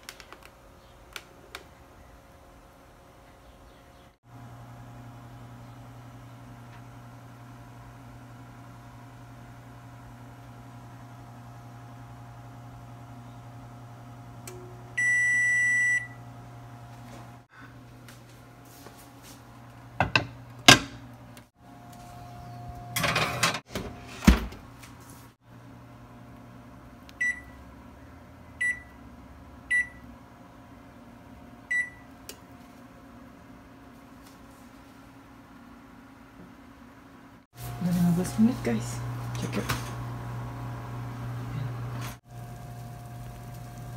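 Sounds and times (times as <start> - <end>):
oven electronic beep: 14.6 - 16.3, 27.2 - 27.6, 28.6 - 29.0, 29.7 - 30.1, 31.7 - 32.1.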